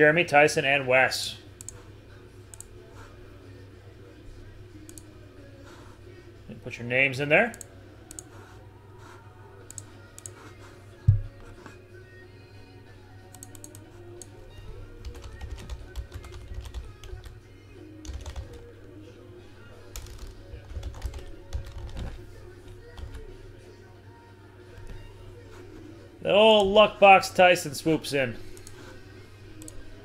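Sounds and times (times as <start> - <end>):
keyboard typing: 13.3 - 14.3, 15.0 - 17.4, 18.0 - 18.6, 19.9 - 22.2, 22.8 - 23.2, 28.5 - 28.9.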